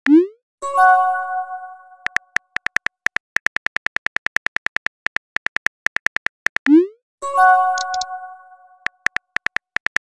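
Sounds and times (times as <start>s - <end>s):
smartphone keyboard key clicks: 7.8s - 8.1s, 8.9s - 10.0s.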